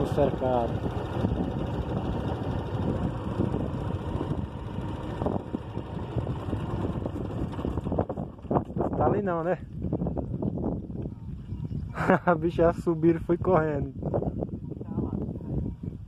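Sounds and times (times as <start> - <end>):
vehicle driving on asphalt: 0.0 - 11.5
wind buffeting microphone: 0.0 - 16.0.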